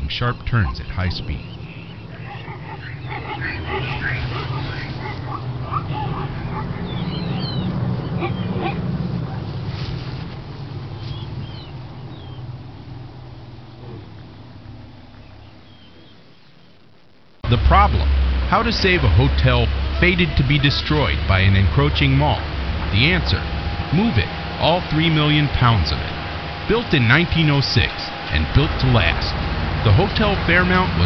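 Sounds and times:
bird-like chirps: 0.0 - 8.8, 10.8 - 16.9
steady low rumble: 0.0 - 31.0.

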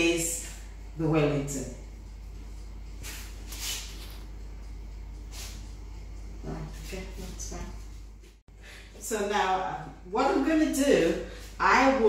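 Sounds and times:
steady low hum: 0.0 - 12.0
hands brushing pastry: 2.9 - 4.4.

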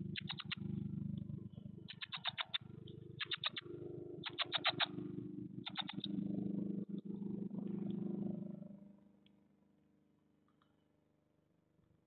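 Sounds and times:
nestlings begging calls: 0.1 - 0.6, 1.9 - 2.6, 3.2 - 3.6, 4.2 - 4.9, 5.7 - 6.1
low steady drone: 2.6 - 9.0.

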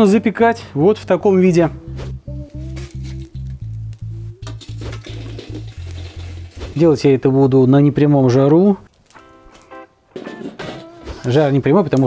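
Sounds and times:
quiet music with held notes: 0.0 - 7.0, 8.5 - 12.0.

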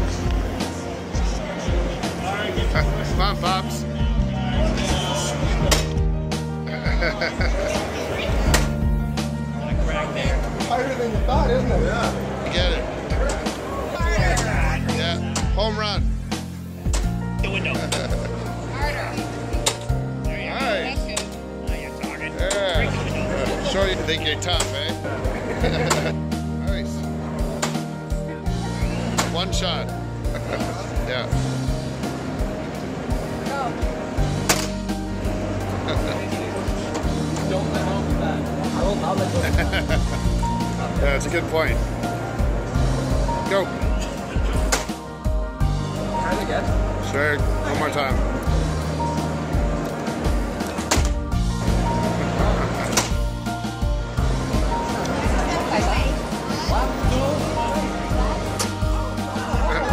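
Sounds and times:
background music with beat: 0.0 - 59.9.

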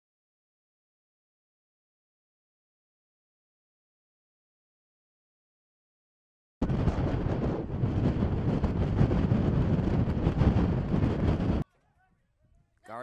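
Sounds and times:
wind buffeting microphone: 6.6 - 12.8.

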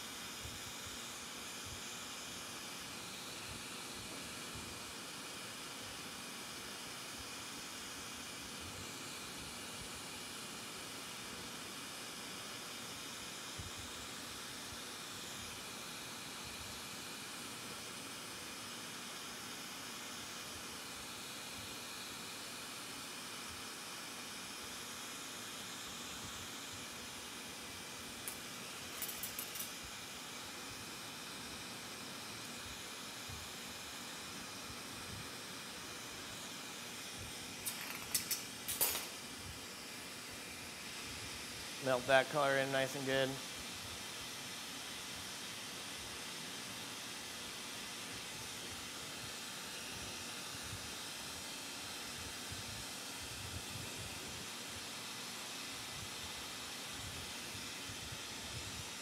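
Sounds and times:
torch flame hissing: 25.2 - 59.0.

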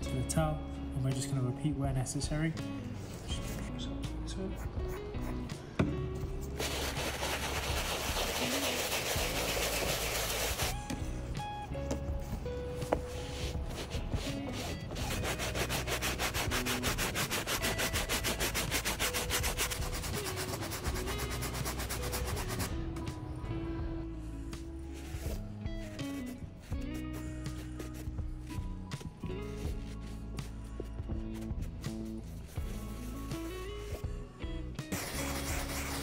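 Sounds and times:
background music: 0.0 - 36.0
brush scrubbing canvas shoe: 6.5 - 10.8, 12.9 - 22.7, 34.9 - 36.0.

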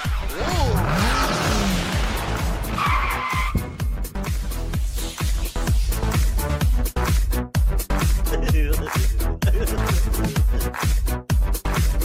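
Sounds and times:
electronic music with kick drum: 0.0 - 12.0.

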